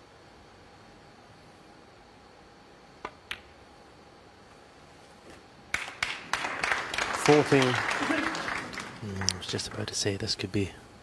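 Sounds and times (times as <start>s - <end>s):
hushed arena background: 0.0s - 11.0s
snooker balls clicking: 3.0s - 3.6s.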